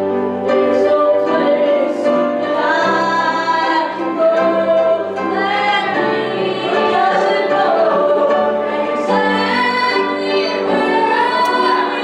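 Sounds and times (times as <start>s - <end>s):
piano: 0.0s - 12.0s
voices singing a gospel hymn: 0.5s - 12.0s.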